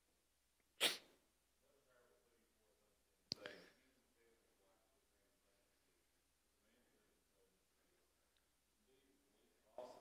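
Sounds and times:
sneeze: 0.8 - 1.2.

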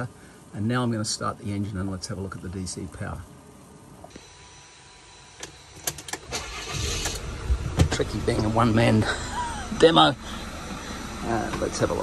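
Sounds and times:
diesel engine cranking and starting: 5.4 - 12.0.

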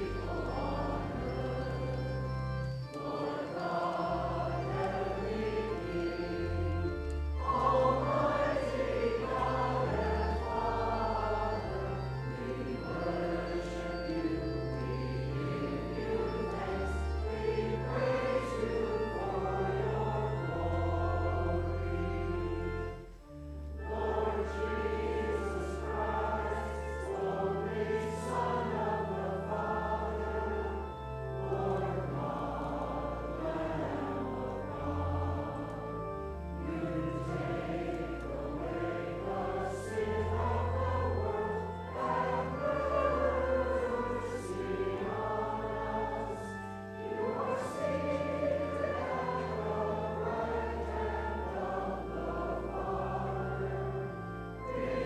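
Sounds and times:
church organ: 0.0 - 55.0
congregation and choir singing hymn: 0.0 - 55.0.

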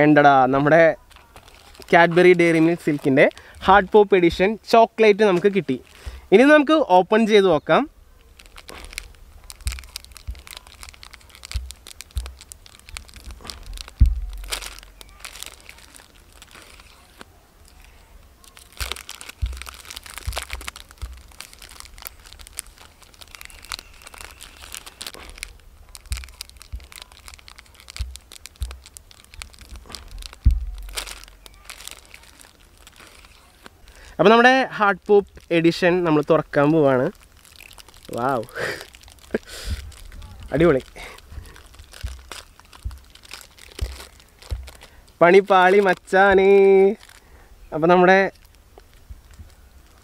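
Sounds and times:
plastic wrapper crinkling and tearing: 0.0 - 50.0.

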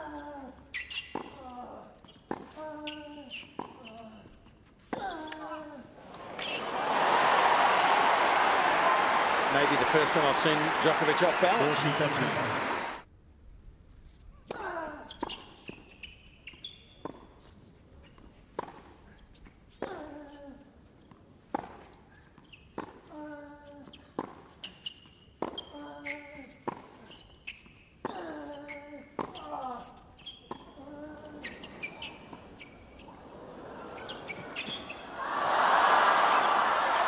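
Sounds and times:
shoes squeaking: 0.7 - 5.6, 6.2 - 6.8, 15.1 - 18.4, 27.0 - 33.3, 33.9 - 35.1
crowd noise: 6.0 - 13.0, 33.1 - 37.0
players grunting: 6.1 - 13.0.

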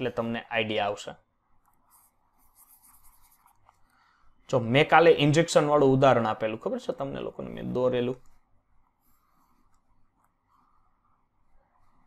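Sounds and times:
stylus scratching on tablet: 1.6 - 4.0, 7.4 - 12.0.

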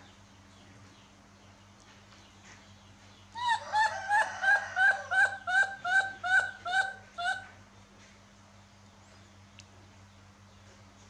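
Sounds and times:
baby monkey crying: 3.4 - 7.5.

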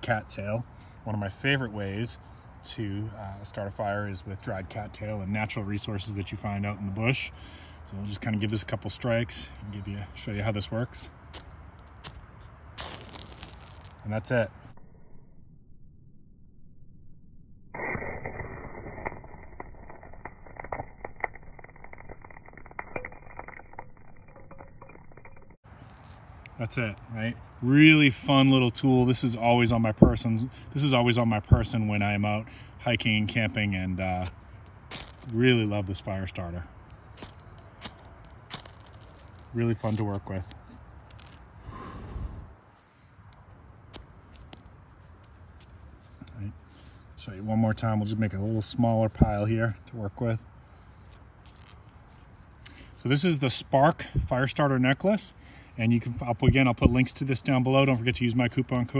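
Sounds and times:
tinder crackling: 3.4 - 14.8, 17.6 - 58.9
soft rustle: 11.4 - 14.2, 25.7 - 27.2.

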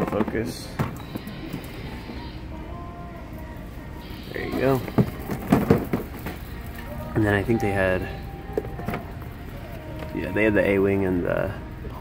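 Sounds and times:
store background noise: 0.0 - 12.0
faint tones: 0.6 - 12.0.

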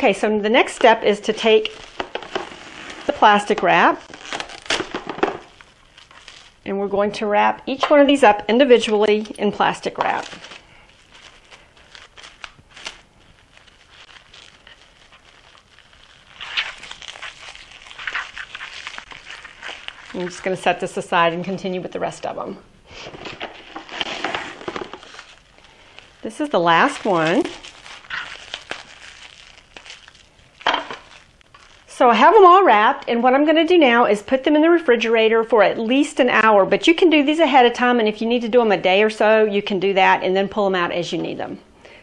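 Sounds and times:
plastic wrap crinkling: 0.0 - 32.4.

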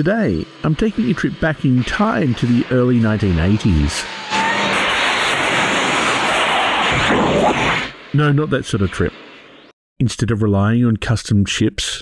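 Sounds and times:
loud rushing blast: 0.4 - 9.7.

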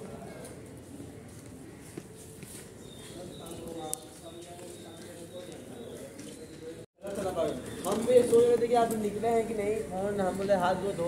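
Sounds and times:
voices: 3.0 - 11.0.

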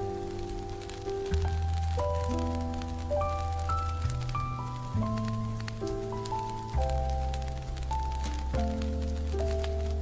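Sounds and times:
jazz piano with bass: 0.0 - 10.0
rain patter: 0.0 - 10.0.

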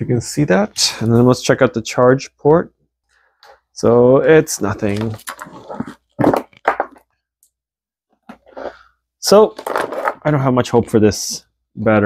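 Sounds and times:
wires clicking and rustling: 4.6 - 7.6.

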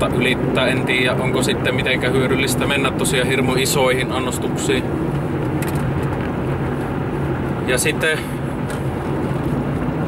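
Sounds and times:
car engine hum and road noise: 0.0 - 10.0.

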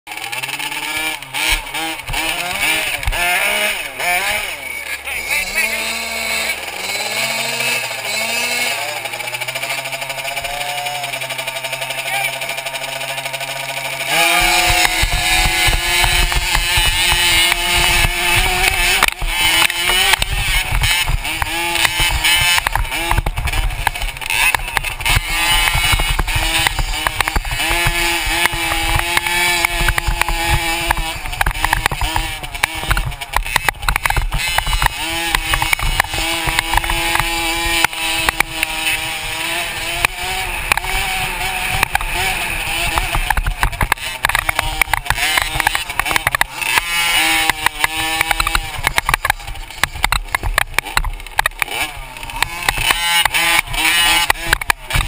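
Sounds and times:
motocross bike engines revving: 0.1 - 55.0.

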